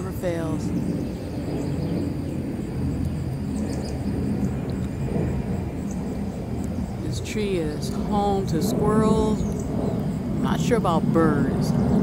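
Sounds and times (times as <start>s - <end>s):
airplane rumbling overhead: 0.0s - 12.0s.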